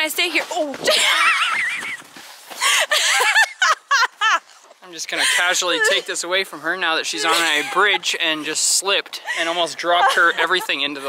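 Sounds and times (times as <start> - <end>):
woman shrieking with laughter: 0.9 - 4.5.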